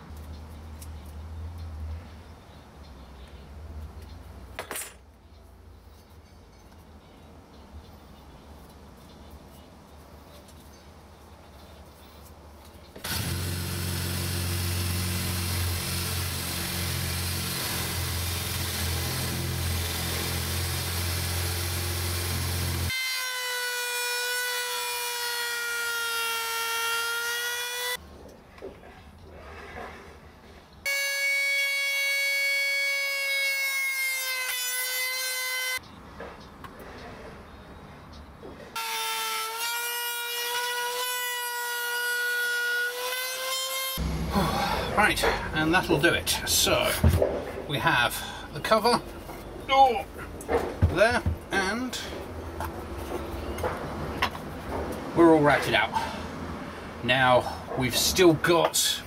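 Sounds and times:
cordless drill running: 13.0 - 23.7
router whining: 13.0 - 28.0.

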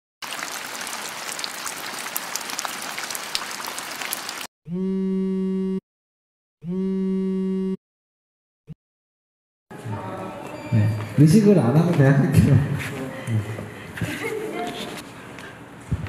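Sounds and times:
rain falling: 0.2 - 4.5.

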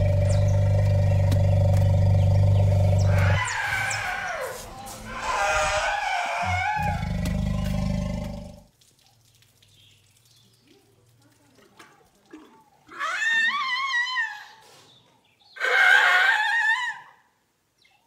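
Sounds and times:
elephants calling: 0.0 - 8.6.

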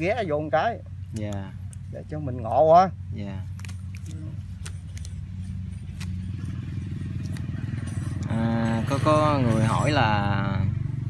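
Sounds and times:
small engine running: 4.3 - 11.0.

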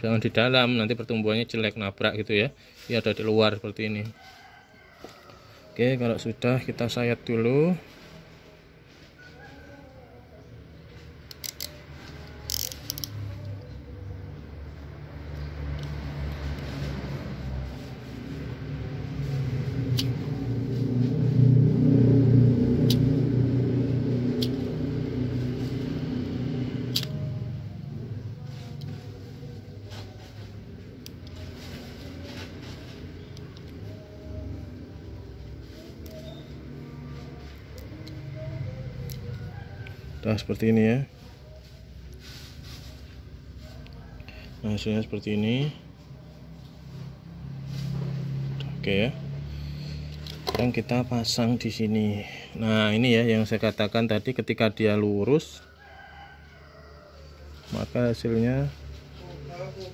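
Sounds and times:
passing vehicle engine hum: 0.0 - 59.9.

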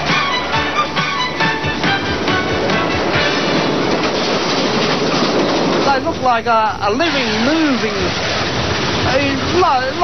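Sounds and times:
steam locomotive running: 0.0 - 10.0.

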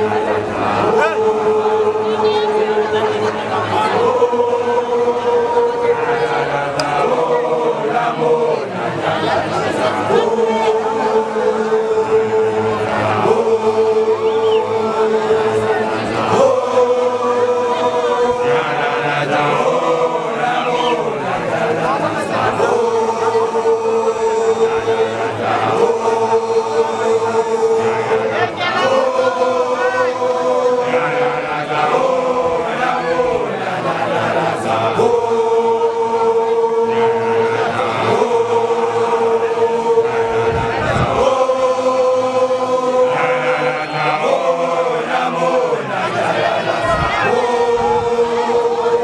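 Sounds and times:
men chanting in long held notes: 0.0 - 49.0.

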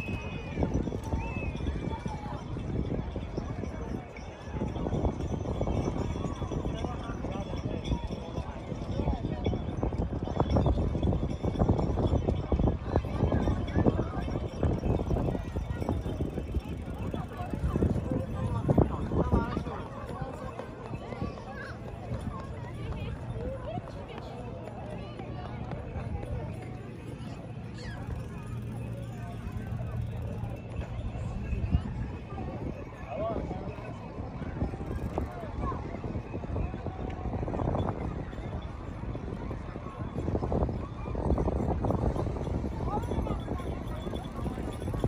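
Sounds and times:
people talking outdoors: 0.0 - 45.0.

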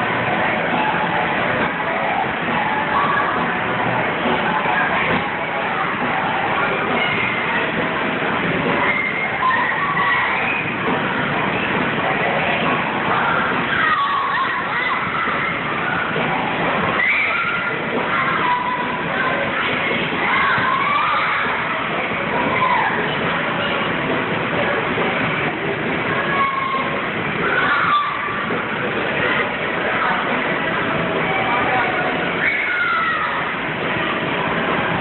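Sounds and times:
crowd noise: 0.0 - 35.0
children shouting and squealing: 1.8 - 3.6, 8.7 - 11.7, 12.4 - 23.2, 26.0 - 28.6, 31.2 - 33.8.

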